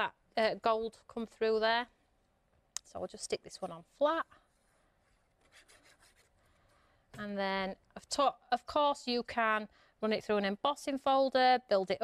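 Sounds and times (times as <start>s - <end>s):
card rubbing and rustling: 4.6s - 6.6s.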